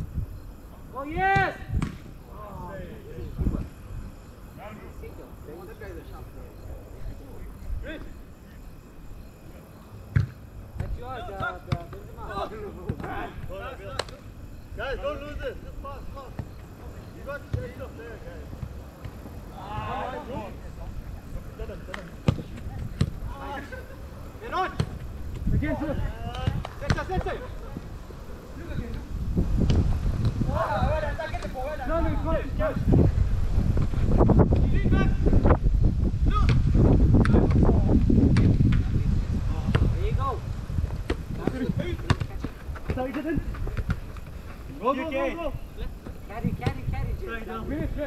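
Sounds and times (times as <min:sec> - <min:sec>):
distant players shouting: 0:00.8 - 0:03.0, 0:10.4 - 0:20.7
ball kicked thuds: 0:01.3 - 0:02.1, 0:10.1 - 0:12.0, 0:21.9 - 0:23.2, 0:24.7 - 0:25.6, 0:26.3 - 0:27.3, 0:38.3 - 0:38.9, 0:39.6 - 0:40.0, 0:40.8 - 0:44.3, 0:46.0 - 0:46.9
players shouting: 0:19.5 - 0:20.6.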